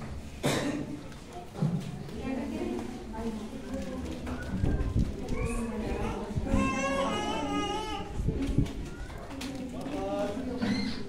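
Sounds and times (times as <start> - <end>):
indistinct voices of people talking: 0.4 - 11.0.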